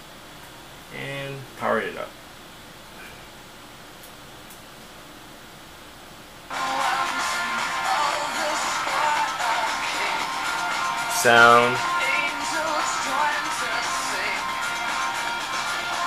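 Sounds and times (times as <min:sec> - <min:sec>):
faint radio hiss: 0:00.0 - 0:16.0
music from radio speaker: 0:06.5 - 0:16.0.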